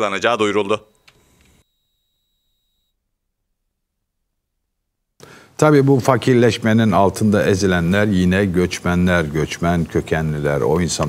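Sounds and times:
faint high whine: 0.0 - 4.5.

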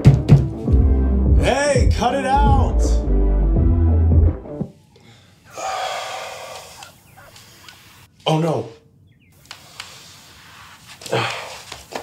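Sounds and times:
background music: 0.0 - 4.7
man gasping: 5.0 - 6.8, 11.0 - 11.7.

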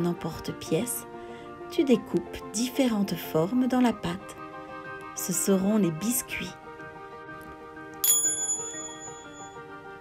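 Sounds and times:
soft background music: 0.0 - 10.0
small bell chiming: 8.0 - 9.8.

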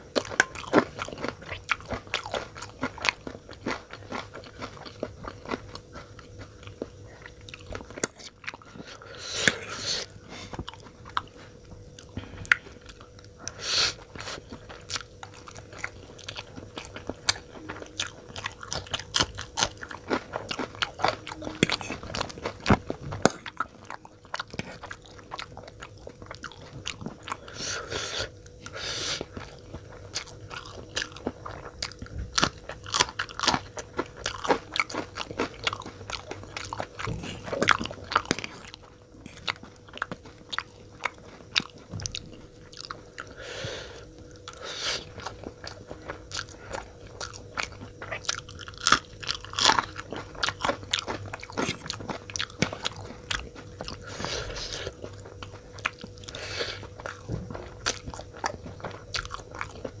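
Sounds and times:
crunching and chewing: 0.0 - 60.0
faint steady hum: 0.0 - 60.0.

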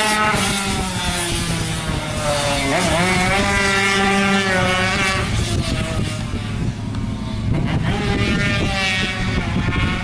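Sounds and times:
motorcycle engine at high revs: 0.0 - 10.0.

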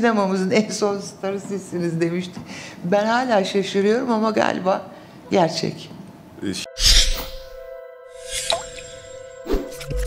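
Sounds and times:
steady held tones: 6.6 - 10.0.

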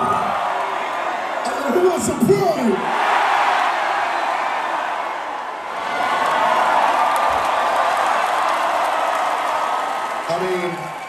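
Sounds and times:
large crowd cheering: 0.0 - 11.0.

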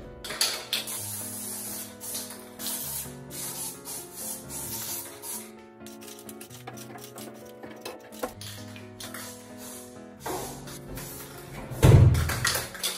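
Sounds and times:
aerosol can spraying: 0.7 - 11.3.

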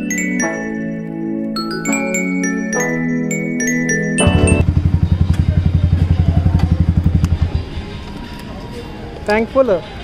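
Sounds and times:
motorcycle engine idling: 4.3 - 8.0.

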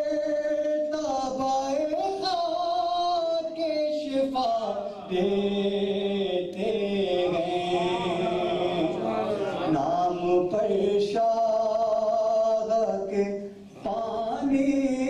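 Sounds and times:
man chanting melodic recitation: 0.0 - 15.0.

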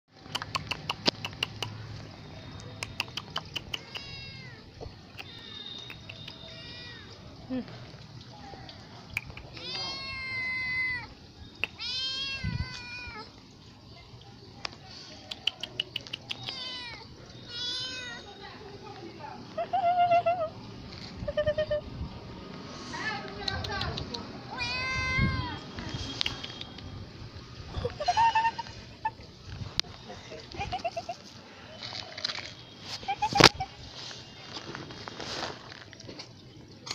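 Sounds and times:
short irregular clicks: 0.2 - 1.8, 2.6 - 4.1
cat chirps: 2.9 - 4.6, 9.2 - 13.2, 15.6 - 18.3
cat meowing: 3.7 - 7.2, 9.6 - 11.1, 11.7 - 13.3, 16.4 - 18.3, 24.5 - 25.6.

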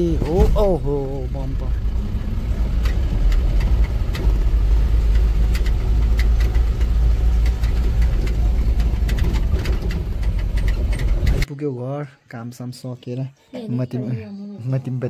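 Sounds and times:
vehicle engine rumbling: 0.0 - 11.5
knocks and clatters from cab: 2.8 - 11.5.

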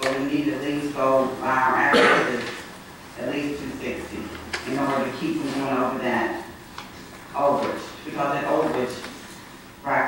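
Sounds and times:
person talking: 0.0 - 10.0.

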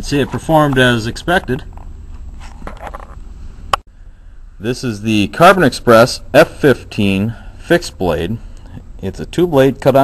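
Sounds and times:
faint handling noise: 0.0 - 3.8
low steady hum: 0.0 - 10.0.

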